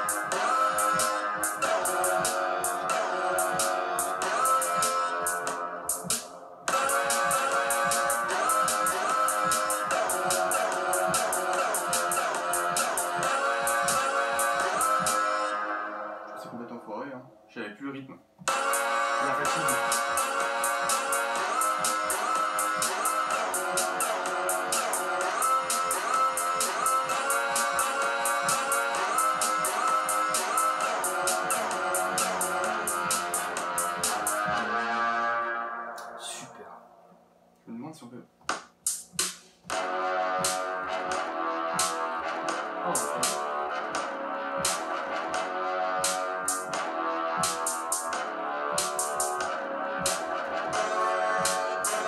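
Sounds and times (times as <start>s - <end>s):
loop-based electronic music: 0.0s - 16.8s, 18.4s - 37.0s, 38.5s - 52.0s.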